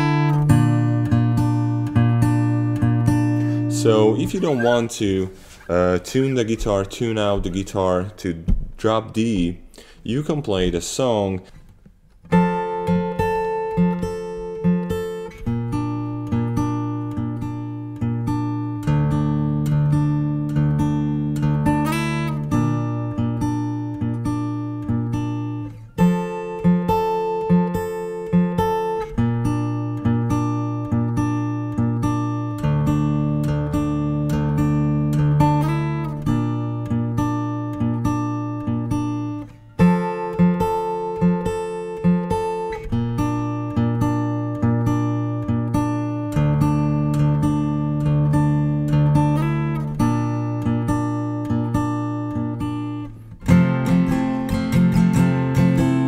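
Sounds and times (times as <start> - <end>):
fingerpicked acoustic guitar: 0.0 - 10.0, 11.4 - 56.0.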